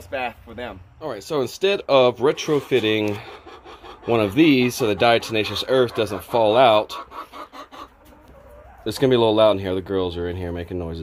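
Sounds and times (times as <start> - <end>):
hens clucking: 0.7 - 10.9.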